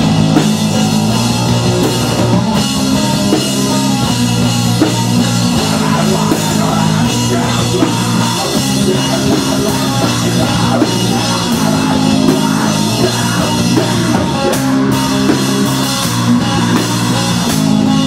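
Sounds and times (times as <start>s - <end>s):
drum kit with cymbals: 0.0s - 18.0s
rock band playing: 0.0s - 18.0s.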